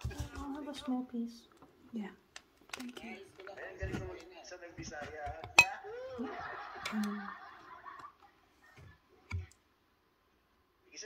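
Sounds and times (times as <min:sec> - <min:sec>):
conversation: 0:00.0 - 0:11.0
cutlery clinking against dish: 0:05.0 - 0:05.8.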